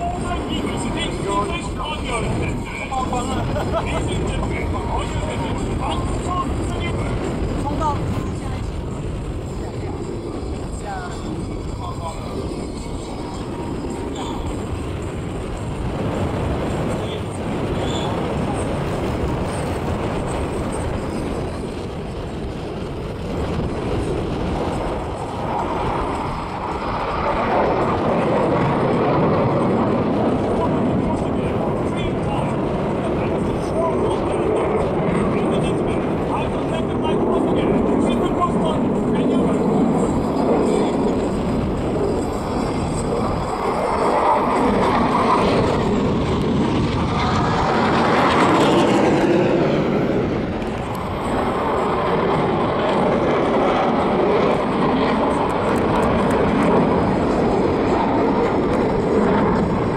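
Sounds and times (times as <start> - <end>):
jet engine passing: 0.0 - 59.9.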